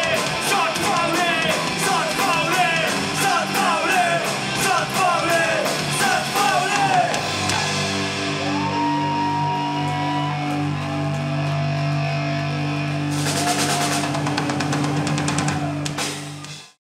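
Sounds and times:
rapid cymbal and drum hits: 0:00.0 - 0:08.7, 0:13.0 - 0:16.8
punk band sustained guitar chord: 0:00.0 - 0:16.0.

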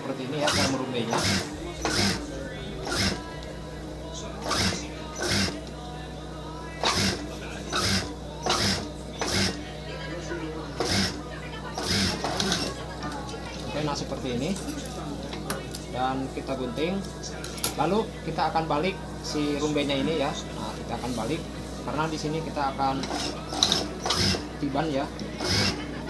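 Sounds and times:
sewing machine stitching: 0:00.4 - 0:02.2, 0:06.8 - 0:09.6, 0:10.8 - 0:11.2, 0:11.8 - 0:12.7, 0:23.1 - 0:24.4
sewing machine motor humming: 0:00.4 - 0:06.0, 0:06.8 - 0:09.7, 0:10.8 - 0:12.8, 0:23.0 - 0:24.5, 0:25.4 - 0:25.9.

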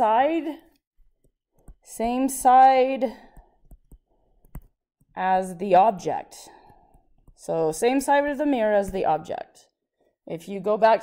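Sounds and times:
stylus tapping on tablet screen: 0:01.0 - 0:05.2, 0:06.6 - 0:07.5.

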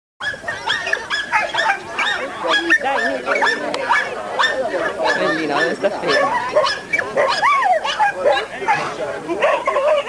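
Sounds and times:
dog yipping and barking: 0:00.2 - 0:10.0
people's voices: 0:00.2 - 0:10.0.

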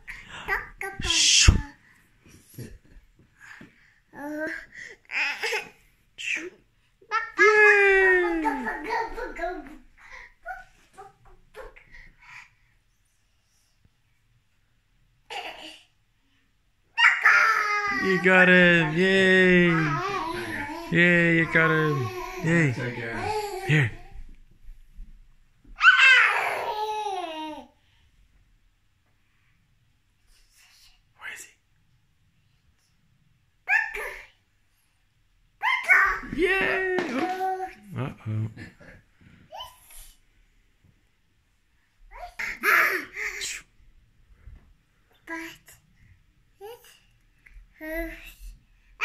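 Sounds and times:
toddler high-pitched exclamation: 0:07.1 - 0:09.8, 0:17.0 - 0:24.2, 0:25.8 - 0:27.6, 0:33.7 - 0:34.3, 0:35.6 - 0:37.9.

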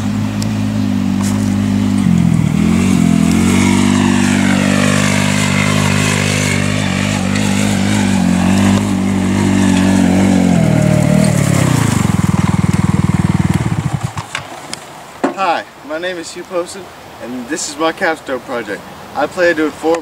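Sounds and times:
small go-kart engine running: 0:00.0 - 0:14.4.

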